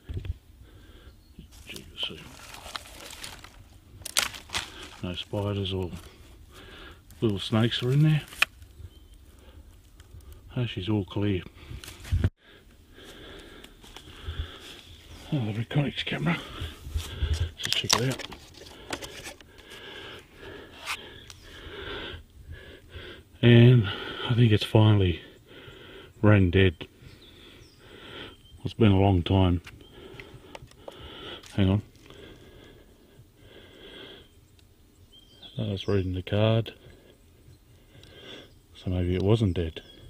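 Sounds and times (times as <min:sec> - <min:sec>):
rustling leaf litter: 0:01.5 - 0:08.5
dry twigs snapping: 0:01.5 - 0:08.7
plastic case rustling and rubbing: 0:01.6 - 0:06.1, 0:17.3 - 0:19.7.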